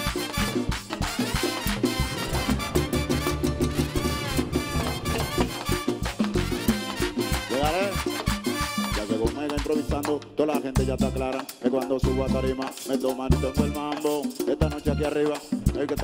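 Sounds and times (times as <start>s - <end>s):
bass dance beat: 0.0s - 9.4s
trumpet and trombone lines: 0.0s - 10.2s, 10.8s - 16.0s
congas: 0.0s - 16.0s
metal scraper percussion: 0.0s - 16.0s.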